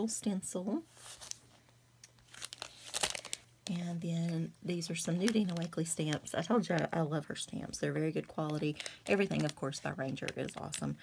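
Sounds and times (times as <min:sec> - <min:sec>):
plastic packaging crinkling: 0:01.0 - 0:11.0.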